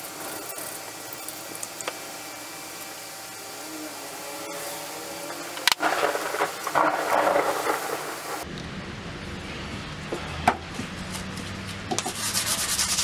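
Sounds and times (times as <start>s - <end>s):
rubbing and scraping a hammer: 11.9s - 13.0s.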